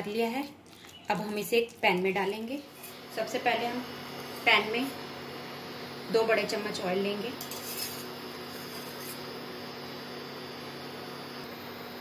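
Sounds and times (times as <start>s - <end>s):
electrical hum: 0.0s - 12.0s
low hiss from electric hob: 2.2s - 12.0s.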